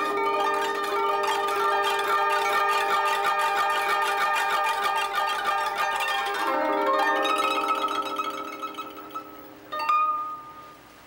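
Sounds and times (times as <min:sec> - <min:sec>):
koto plucked notes: 0:00.0 - 0:10.8.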